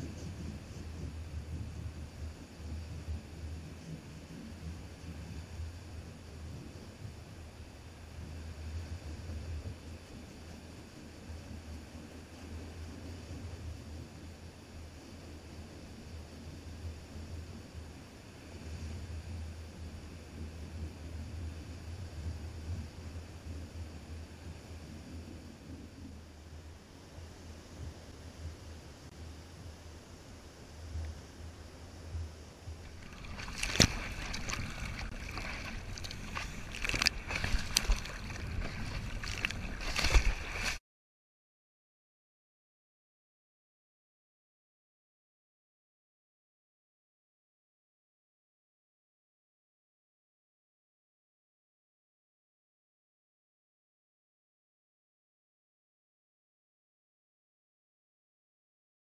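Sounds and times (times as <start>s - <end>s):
wind rumbling on microphone: 0.0s - 40.8s
waves breaking on shore: 32.6s - 40.8s
water splashing around surfboard: 32.8s - 40.8s.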